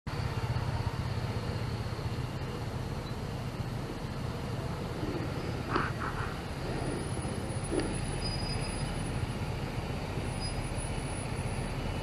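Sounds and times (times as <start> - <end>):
scooter engine and road rumble: 0.1 - 12.0.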